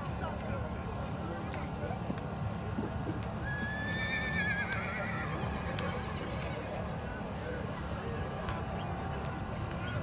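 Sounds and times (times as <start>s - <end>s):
horse whinnying: 3.6s - 5.4s.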